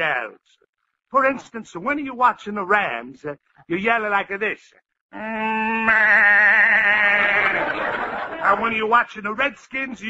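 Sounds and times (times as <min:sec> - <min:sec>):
man imitating sheep bleat: 0:05.1 - 0:07.6.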